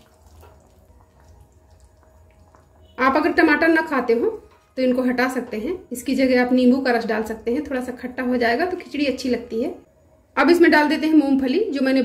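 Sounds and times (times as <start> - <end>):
spatula stirring wet food: 0.0 - 6.1.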